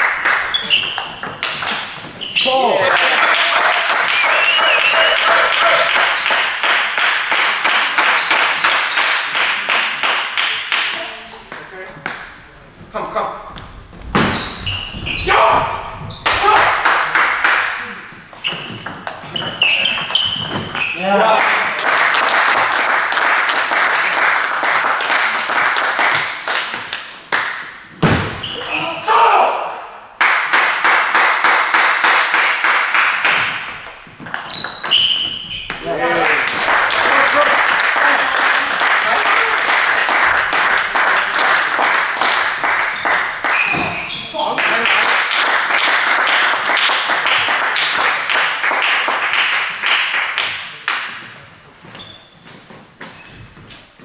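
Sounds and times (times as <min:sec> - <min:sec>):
spectators clapping: 0:00.0 - 0:02.0, 0:02.7 - 0:11.2, 0:16.2 - 0:18.1, 0:19.9 - 0:27.8, 0:30.2 - 0:34.5, 0:36.0 - 0:51.4
spectators shouting and cheering: 0:02.5 - 0:06.2, 0:15.1 - 0:16.9.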